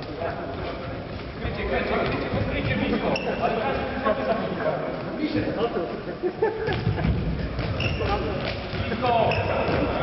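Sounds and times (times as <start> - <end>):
players' voices echoing: 0.0 - 10.0.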